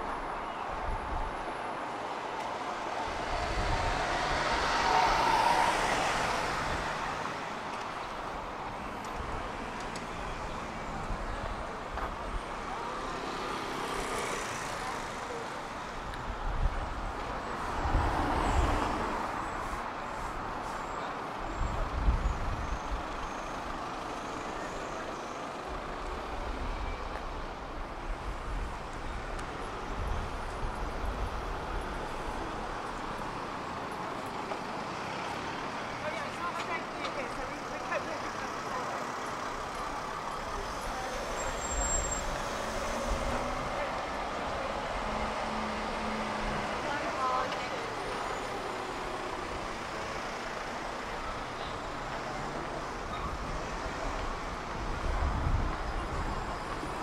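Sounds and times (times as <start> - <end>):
cars driving past: 1.8 - 24.7, 25.5 - 57.0
passers-by talking: 32.9 - 57.0.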